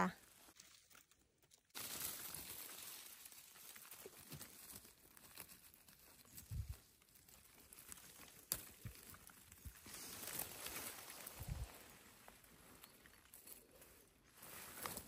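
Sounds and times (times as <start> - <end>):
rustling of leaves and twigs: 0.0 - 15.0.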